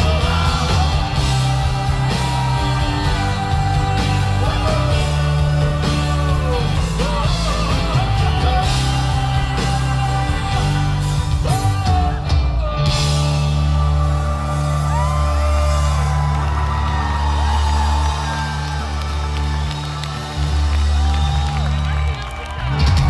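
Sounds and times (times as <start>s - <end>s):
live pop-rock band: 0.0s - 23.0s
sustained bass notes: 0.0s - 23.0s.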